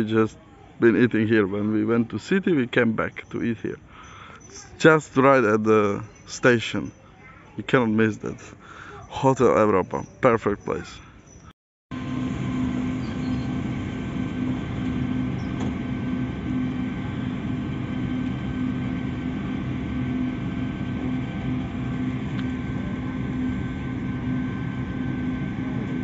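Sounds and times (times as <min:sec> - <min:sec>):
railcar machinery humming: 0:11.9 - 0:26.0.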